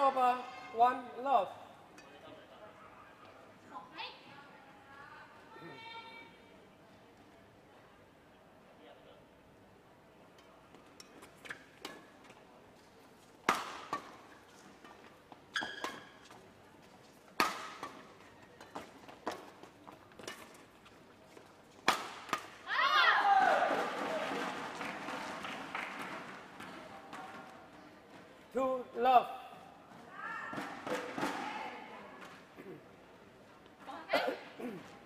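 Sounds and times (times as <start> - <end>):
racket hitting shuttlecock: 13.4 - 16.4, 17.4 - 19.6, 20.2 - 20.7, 21.8 - 22.7, 30.5 - 31.4
crowd cheering and shouting: 22.7 - 24.5.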